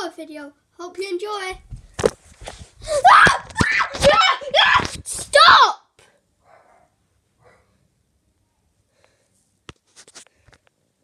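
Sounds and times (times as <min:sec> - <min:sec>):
people screaming and shouting: 0:02.9 - 0:05.0.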